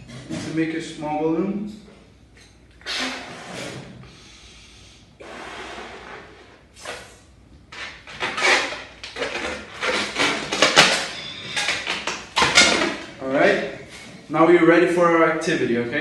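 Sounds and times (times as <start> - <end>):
breath blown into balloon: 2.8 - 7.3
balloon rubbing and rustling: 5.2 - 12.0.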